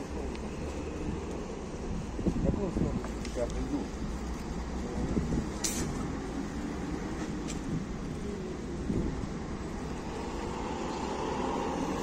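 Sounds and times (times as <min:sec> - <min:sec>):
city street traffic rumble: 0:00.0 - 0:12.0
short sharp hiss: 0:05.6 - 0:06.0.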